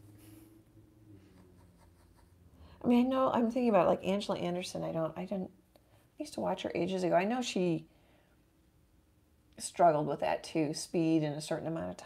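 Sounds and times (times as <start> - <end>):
low room hum: 0.0 - 12.0
woman speaking: 2.8 - 5.5, 6.2 - 7.9, 9.6 - 12.0.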